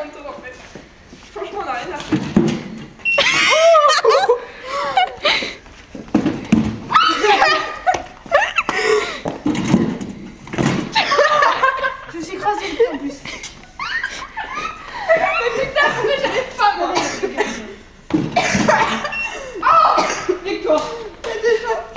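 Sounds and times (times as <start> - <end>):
young people laughing: 3.1 - 5.7, 6.9 - 9.4, 10.9 - 17.8, 18.4 - 21.9.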